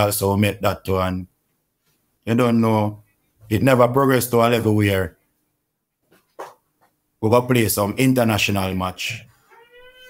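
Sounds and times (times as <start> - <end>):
man speaking: 0.0 - 1.3, 2.3 - 5.2, 7.2 - 9.3.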